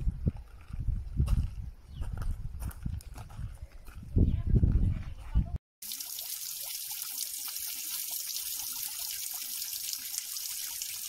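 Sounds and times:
footsteps on rock: 0.2s - 5.4s.

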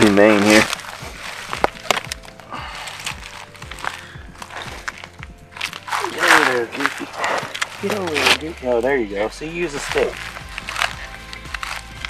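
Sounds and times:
man's wordless voice: 0.0s - 0.8s, 6.0s - 10.2s
handling clicks and rustles: 0.0s - 12.0s.

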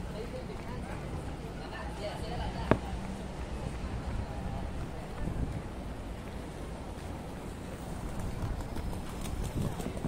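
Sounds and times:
busy street rumble: 0.0s - 10.0s
footsteps on stone paving: 0.0s - 10.0s.

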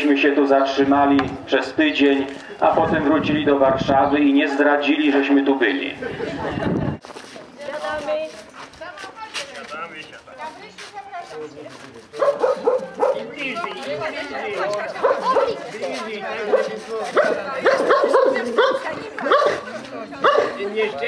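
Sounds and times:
people talking over one another: 0.0s - 21.0s
dog barking: 12.2s - 13.3s, 15.0s - 15.6s, 16.5s - 20.7s.

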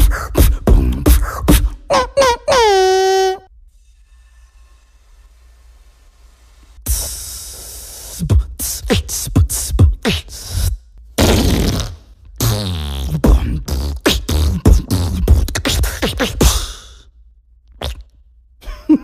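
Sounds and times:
beatboxed kick thumps: 0.0s - 2.6s, 6.8s - 16.9s
beatboxed hissing: 0.0s - 2.7s, 6.8s - 17.1s
beatboxer held pitched tone: 0.0s - 3.4s, 6.9s - 17.0s.

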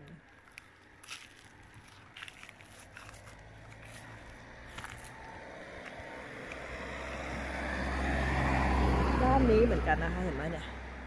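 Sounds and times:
vehicle engine hum: 0.0s - 11.0s.

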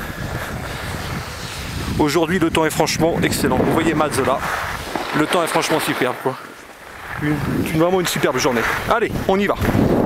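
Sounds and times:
wind on microphone: 0.0s - 10.0s.

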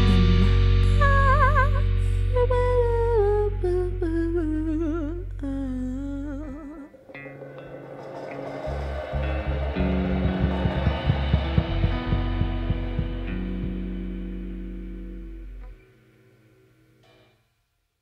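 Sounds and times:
person singing with vibrato: 0.0s - 8.9s
drum and cymbal hits: 7.1s - 14.5s
live rock band playing: 7.1s - 15.1s.

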